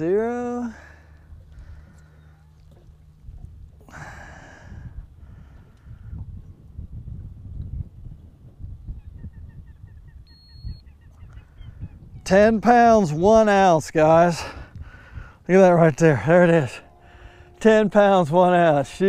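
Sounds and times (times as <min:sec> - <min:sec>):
wind and water around boat: 0:00.0 - 0:19.0.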